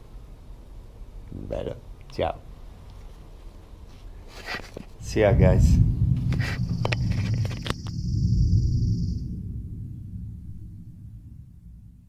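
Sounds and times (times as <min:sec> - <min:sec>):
high hiss: 0:04.9 - 0:11.9
low rumbling noise: 0:05.0 - 0:12.0.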